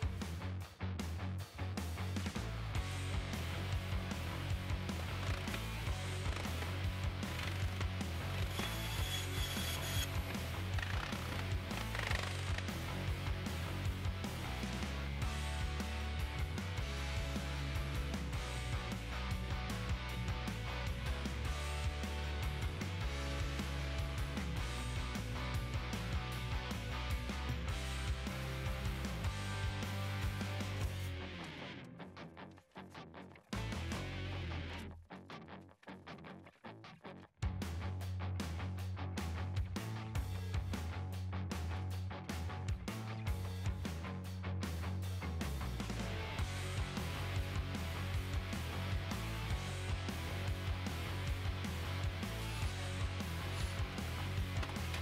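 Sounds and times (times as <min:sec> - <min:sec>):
background music with beat and bass: 0:00.0 - 0:31.9, 0:33.4 - 0:34.9, 0:37.4 - 0:55.0.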